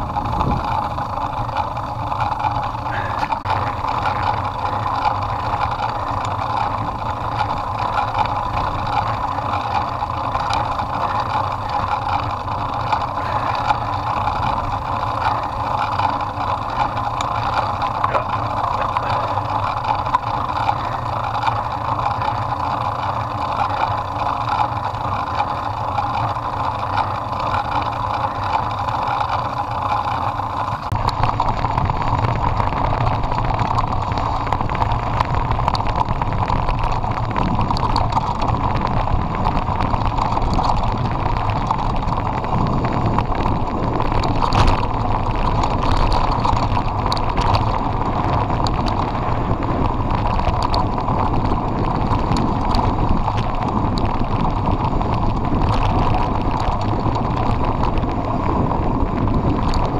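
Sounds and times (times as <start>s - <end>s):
bike rattling clicks: 0.0s - 59.9s
bike tyres crunching on stones: 0.0s - 59.9s.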